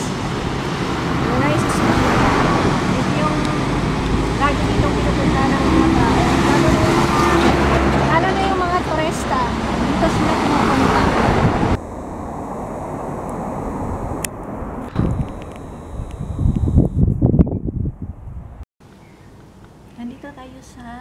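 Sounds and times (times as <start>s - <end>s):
traffic passing: 0.0s - 16.9s
car engine drone: 0.0s - 17.1s
outdoor background: 0.0s - 21.0s
woman talking: 1.3s - 2.2s, 2.9s - 11.3s, 20.0s - 21.0s.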